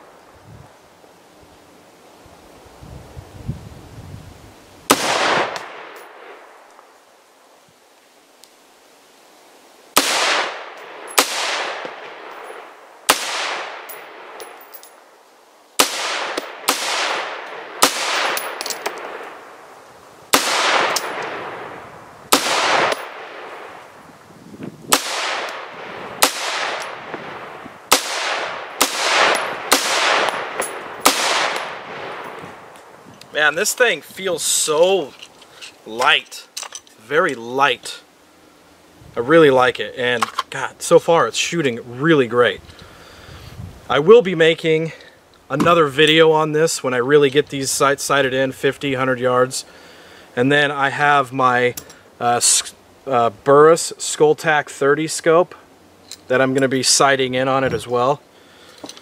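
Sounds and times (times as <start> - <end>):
rifle shots with echo: 4.9 - 6.6, 10.0 - 14.5, 15.8 - 19.5, 20.3 - 23.8, 24.9 - 32.3.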